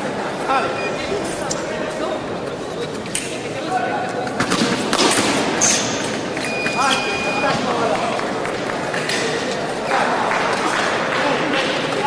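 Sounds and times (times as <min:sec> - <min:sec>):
voices in hall: 0:00.0 - 0:12.0.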